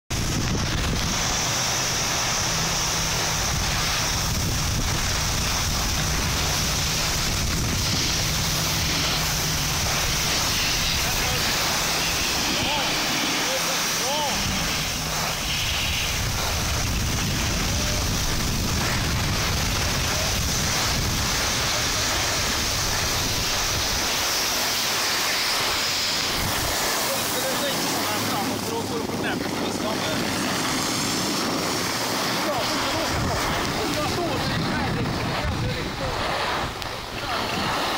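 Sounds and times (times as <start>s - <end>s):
wind rushing on microphone: 0.1s - 37.9s
skis hissing on snow: 0.2s - 37.9s.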